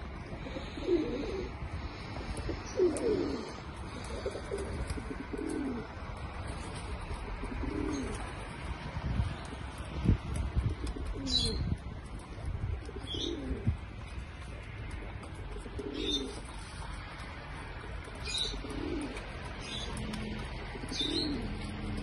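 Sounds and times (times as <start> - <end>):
pigeons cooing: 0.0 - 22.0.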